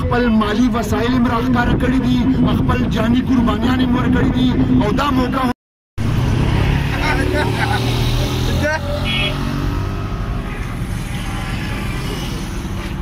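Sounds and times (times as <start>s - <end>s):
men's voices: 0.0s - 5.6s, 6.7s - 9.3s.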